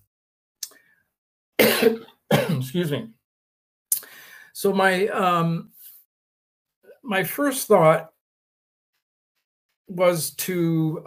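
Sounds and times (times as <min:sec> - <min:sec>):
man coughing: 0:01.6 - 0:02.7.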